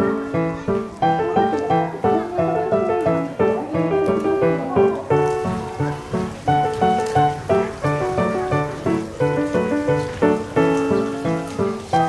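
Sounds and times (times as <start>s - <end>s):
piano music: 0.0s - 12.0s.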